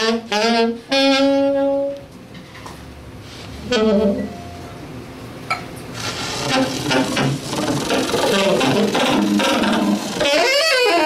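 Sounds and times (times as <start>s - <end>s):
saxophone sputtering broken tones: 6.3s - 11.0s.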